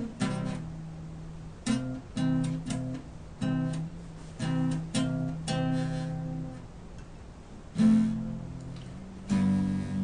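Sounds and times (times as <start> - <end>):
acoustic guitar strumming: 0.0 - 6.7, 7.7 - 10.0.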